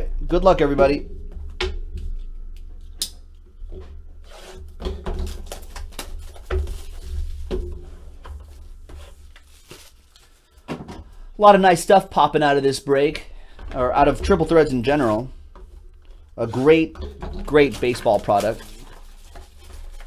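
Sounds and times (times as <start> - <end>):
low steady hum: 0.0 - 20.0
plastic shrink wrap tearing: 9.1 - 10.6, 17.7 - 20.0.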